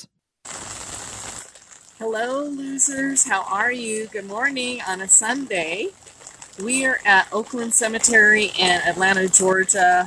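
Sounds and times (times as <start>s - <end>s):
pouring rain: 0.5s - 10.0s.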